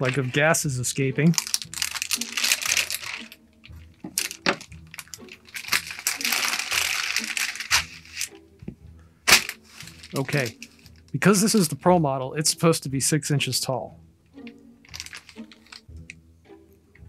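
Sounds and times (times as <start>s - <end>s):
plastic crinkling: 1.2s - 8.4s, 9.3s - 11.1s, 14.9s - 15.9s
scissors cutting thick plastic: 4.2s - 8.3s.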